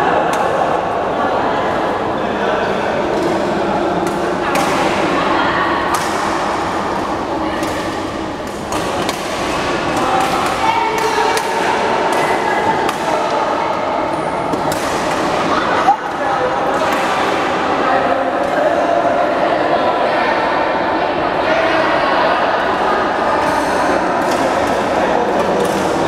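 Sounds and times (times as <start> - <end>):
indistinct voices: 0.0 - 26.0
rackets hitting shuttlecock: 4.0 - 5.1, 5.8 - 7.0, 7.6 - 13.3, 14.5 - 16.2, 24.2 - 26.0.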